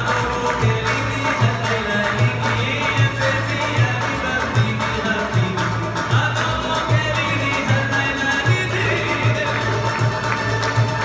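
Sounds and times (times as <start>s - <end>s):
double bass: 0.0s - 11.0s
hand percussion: 0.0s - 11.0s.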